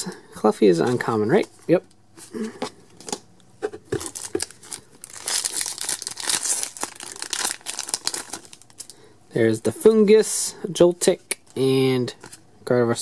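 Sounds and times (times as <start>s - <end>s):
foil wrapper crinkling and tearing: 4.0s - 9.0s.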